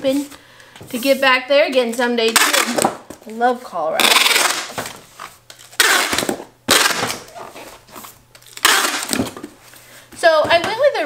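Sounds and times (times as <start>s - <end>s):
packing tape tearing: 2.3s - 3.1s, 4.0s - 9.5s.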